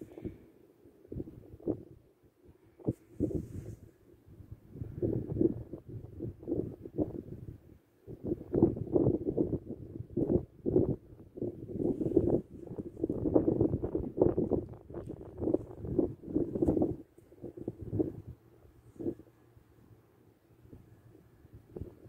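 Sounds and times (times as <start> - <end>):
wind buffeting microphone: 1.1 - 2.0, 2.7 - 19.3, 20.6 - 22.0.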